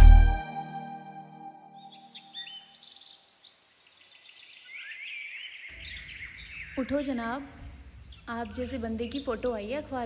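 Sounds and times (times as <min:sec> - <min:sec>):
music: 0:00.0 - 0:02.1
small birds chirping: 0:01.8 - 0:10.0.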